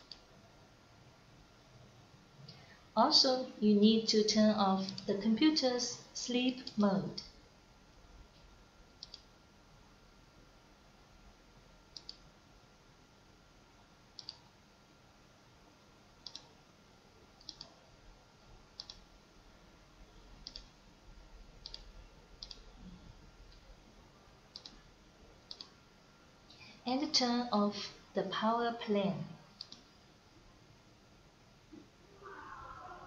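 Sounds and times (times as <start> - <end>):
computer mouse clicking: 0.0 - 0.3, 8.9 - 9.3, 11.9 - 12.2, 14.2 - 14.5, 16.2 - 16.6, 17.4 - 17.8, 18.8 - 19.1, 20.4 - 20.8, 21.6 - 22.7, 24.5 - 24.8, 25.5 - 25.8, 29.6 - 29.9
faint low hum: 0.0 - 33.0.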